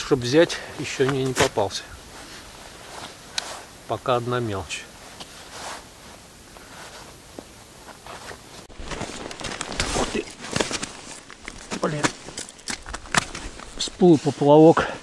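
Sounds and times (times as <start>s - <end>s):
clothing rustling: 0.0s - 12.4s
footsteps crunching on snow: 0.0s - 12.4s
faint outdoor hiss: 0.0s - 15.0s.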